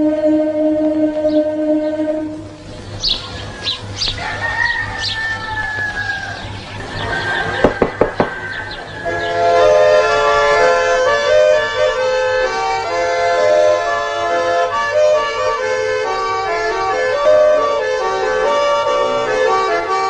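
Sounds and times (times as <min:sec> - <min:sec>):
choir holding a chord: 0:00.0 - 0:02.6
accordion folk dance music: 0:00.0 - 0:03.2, 0:09.0 - 0:20.0
birds chirping: 0:01.2 - 0:14.4
rooster crowing: 0:03.1 - 0:11.0
sharp knocks: 0:07.6 - 0:08.9.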